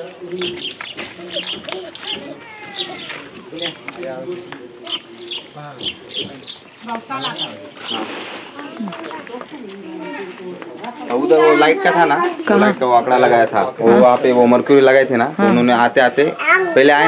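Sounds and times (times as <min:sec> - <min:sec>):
birds chirping: 0:00.0 - 0:15.0
people talking: 0:00.0 - 0:17.0.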